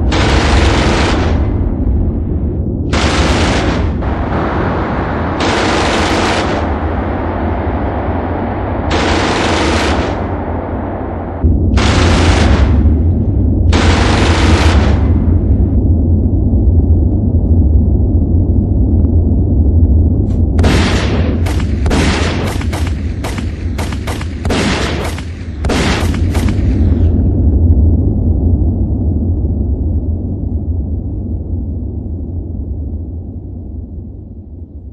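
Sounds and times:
gunshots: 0.0 - 1.7, 2.9 - 7.2, 8.9 - 10.4, 11.7 - 13.0, 13.7 - 15.3, 20.6 - 27.1
machine-gun fire: 0.0 - 1.7, 2.9 - 7.1, 8.9 - 10.4, 11.7 - 13.0, 13.7 - 15.3, 20.6 - 27.1
low rumble: 0.0 - 34.9.

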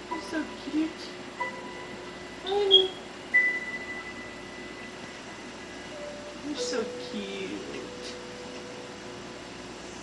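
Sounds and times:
faint steady hum: 0.0 - 10.0
high ringing tone: 1.4 - 5.2.

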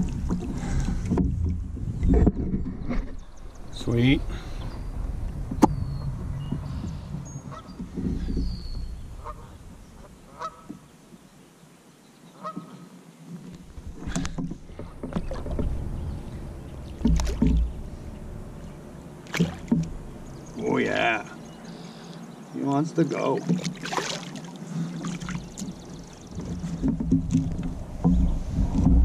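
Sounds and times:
bird calls: 2.0 - 13.0, 14.0 - 28.5
fish splashing in water: 13.9 - 20.6, 23.4 - 28.1
knocks on kayak hull: 25.6 - 29.0.

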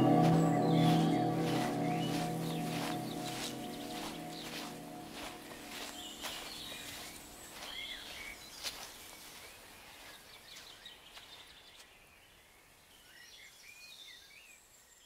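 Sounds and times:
birds chirping: 0.0 - 12.2.

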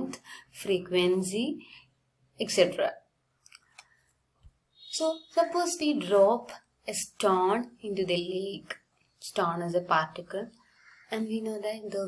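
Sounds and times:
woman speaking: 0.0 - 1.7, 2.4 - 3.0, 4.9 - 12.0.

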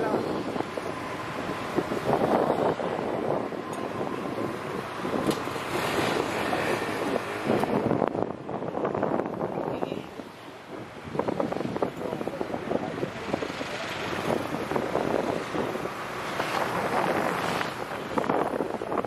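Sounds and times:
passing vehicles: 0.0 - 19.0
wind buffeting microphone: 0.0 - 19.0.

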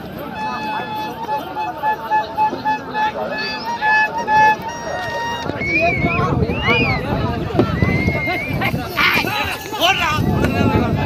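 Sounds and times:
crowd voices and shouting: 0.0 - 11.0.

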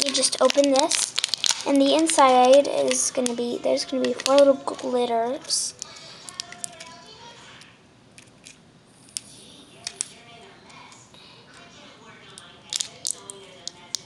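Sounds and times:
plastic toy parts clicking: 0.0 - 4.5, 5.8 - 6.9, 12.4 - 14.0
faint voices: 0.0 - 7.9.

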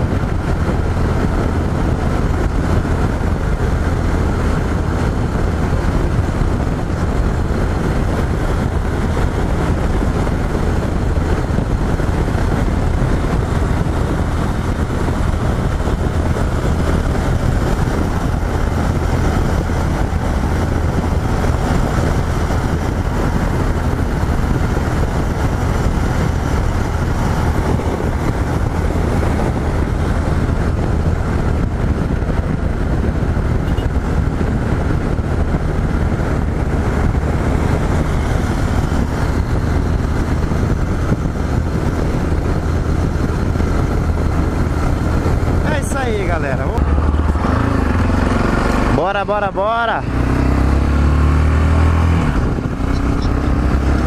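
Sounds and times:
motorcycle engine cruising: 0.0 - 54.0
wind rushing over microphone: 0.0 - 54.0.

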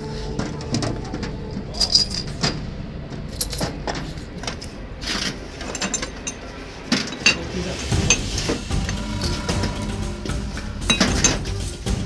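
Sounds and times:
pots and jars clinking: 10.8 - 11.6.

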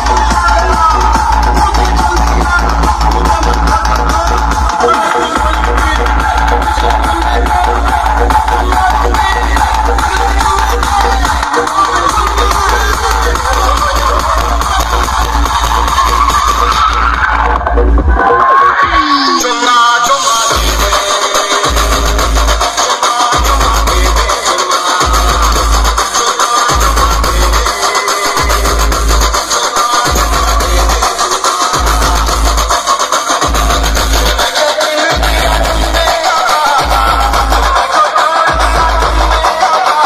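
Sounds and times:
deep bass notes: 0.0 - 19.0, 25.1 - 26.0, 26.7 - 27.7, 28.5 - 29.3, 31.8 - 32.7, 33.4 - 34.4, 35.1 - 36.1, 36.8 - 37.8
loud music through speakers: 0.0 - 40.0.

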